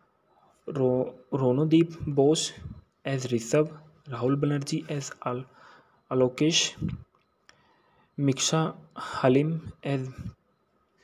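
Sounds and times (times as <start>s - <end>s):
spoken narration: 0.6s - 7.1s, 8.2s - 10.4s.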